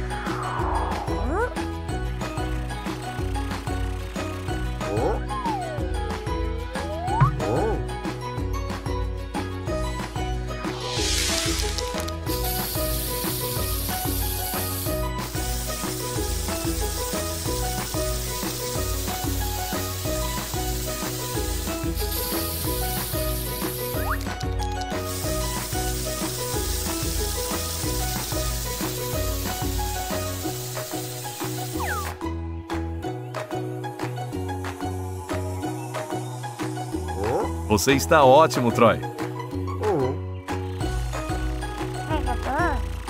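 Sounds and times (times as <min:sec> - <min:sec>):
upbeat background music: 0:00.0 - 0:43.0
spray-paint can hissing: 0:10.6 - 0:32.2.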